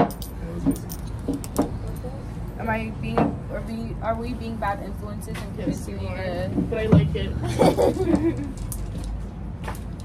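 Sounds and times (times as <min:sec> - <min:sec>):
low street rumble: 0:00.0 - 0:10.0.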